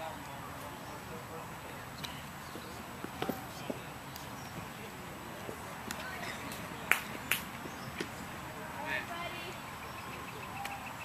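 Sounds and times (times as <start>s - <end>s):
distant voices: 0.0s - 11.0s
open-air background noise: 0.0s - 11.0s.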